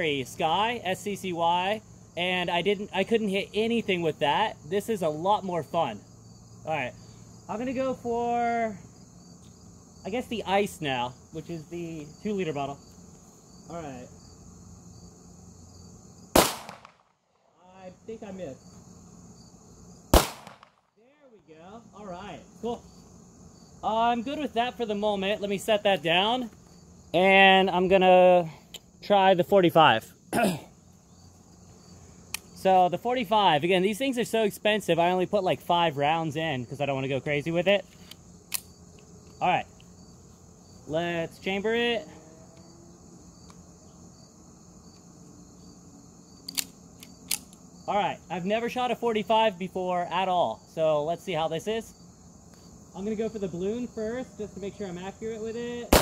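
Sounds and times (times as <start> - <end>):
crickets chirping: 0.0 - 56.0
pistol shot with echo: 16.4 - 17.1, 20.2 - 20.8
pistol slide racking clicks: 46.4 - 47.6.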